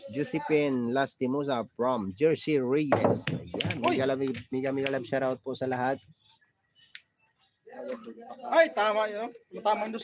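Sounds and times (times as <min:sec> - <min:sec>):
night insects chirping: 0:00.0 - 0:10.0.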